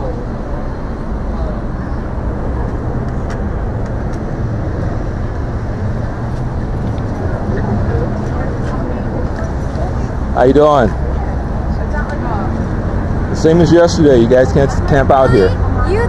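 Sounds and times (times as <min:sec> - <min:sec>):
faint voices of passers-by: 0:00.0 - 0:16.0
passing cars rumble: 0:00.0 - 0:16.0.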